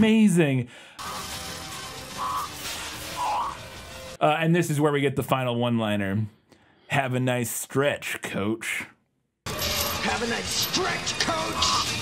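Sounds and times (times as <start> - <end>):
action sound effects: 1.0 - 4.2, 9.5 - 12.0.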